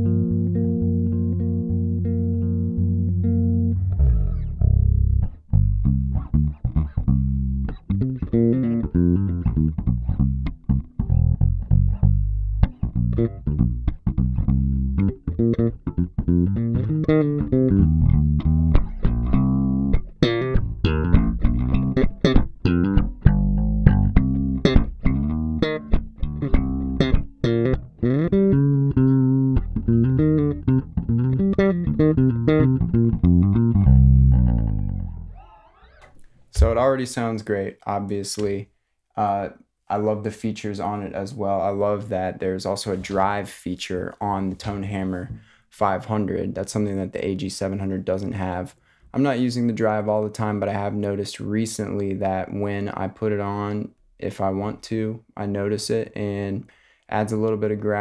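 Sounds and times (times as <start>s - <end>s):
electric bass plucked notes: 0.0s - 37.0s.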